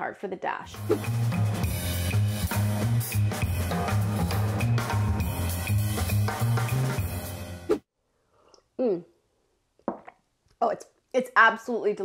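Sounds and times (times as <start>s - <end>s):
music with drum beat and bass: 0.7s - 7.8s.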